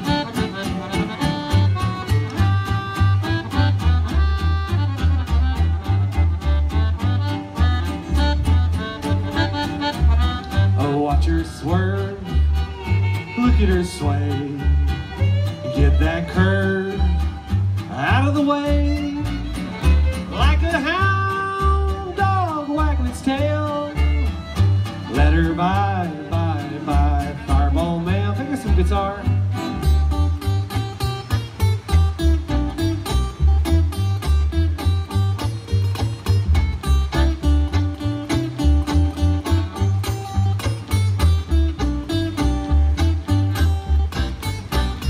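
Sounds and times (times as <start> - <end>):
accordion: 0.0 - 45.0
acoustic guitar: 0.0 - 45.0
fiddle with sliding notes: 0.0 - 45.0
upright bass pulsing beat: 0.0 - 45.0.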